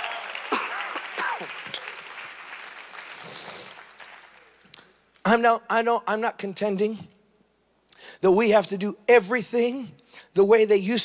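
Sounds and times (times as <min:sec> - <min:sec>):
congregation applauding: 0:00.0 - 0:05.2.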